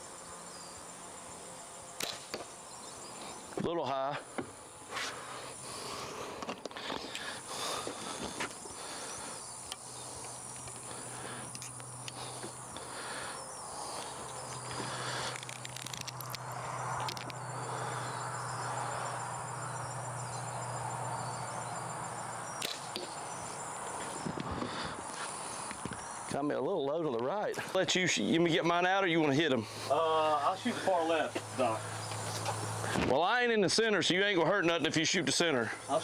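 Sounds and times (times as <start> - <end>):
insects droning: 0.0 - 36.0
low hum: 7.2 - 26.3.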